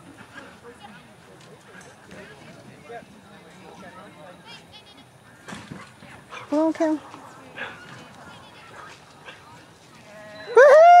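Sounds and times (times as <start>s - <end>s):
high-pitched cry: 10.5s - 11.0s.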